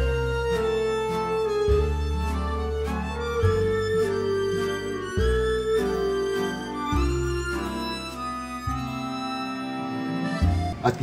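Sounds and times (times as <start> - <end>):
instrumental music of sustained chords: 0.0 - 10.9
man's voice: 10.8 - 11.0.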